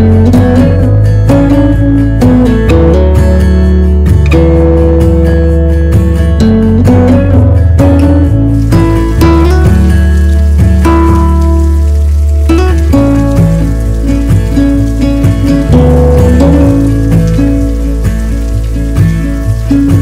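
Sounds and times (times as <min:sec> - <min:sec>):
background music with low notes: 0:00.0 - 0:20.0
rain falling: 0:00.0 - 0:20.0.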